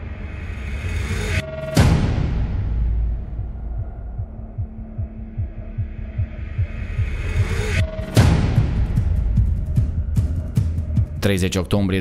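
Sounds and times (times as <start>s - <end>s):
heartbeat-like bass pulses: 0.0s - 11.2s.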